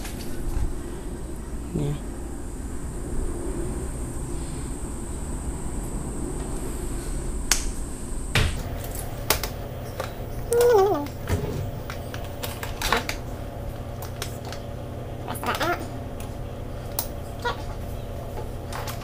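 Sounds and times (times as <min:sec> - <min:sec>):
faint high whine: 0:00.0 - 0:15.3
low background hum: 0:00.0 - 0:19.0.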